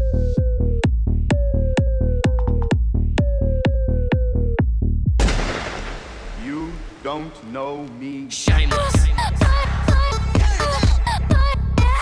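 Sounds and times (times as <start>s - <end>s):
dance beat: 0.0s - 4.4s, 8.5s - 12.0s
sudden loud bang: 5.2s - 7.5s
person speaking: 6.4s - 9.2s.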